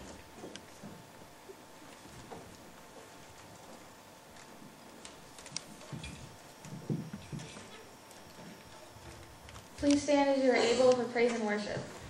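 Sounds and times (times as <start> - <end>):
microphone being handled: 1.8 - 9.9.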